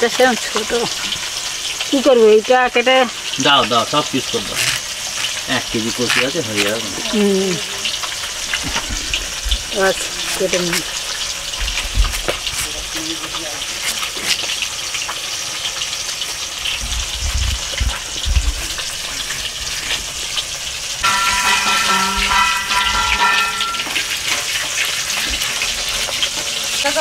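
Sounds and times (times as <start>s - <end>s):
food frying in hot oil: 0.0s - 27.0s
high-pitched tone: 21.0s - 24.0s.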